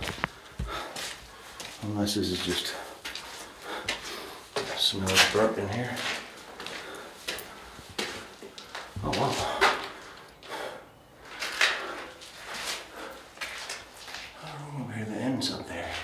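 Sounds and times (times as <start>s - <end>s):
footsteps scraping on stone floor: 0.0s - 14.6s.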